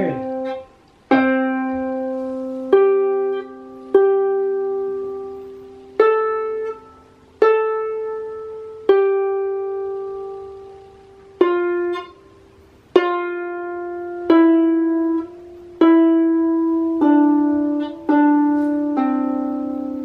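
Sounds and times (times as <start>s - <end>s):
harp notes plucked: 0.0s - 20.0s.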